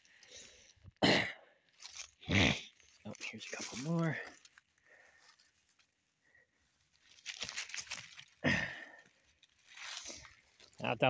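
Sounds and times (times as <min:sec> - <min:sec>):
leaves and grass rustling: 0:01.7 - 0:11.0.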